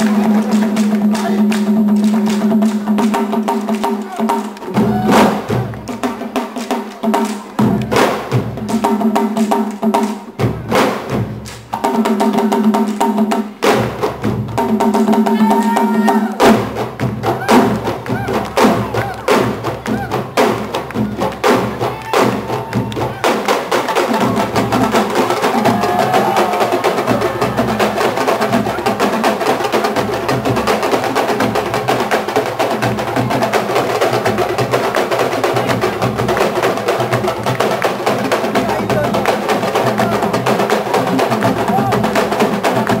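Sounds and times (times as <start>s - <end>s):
drum ensemble playing: 0.0s - 43.0s.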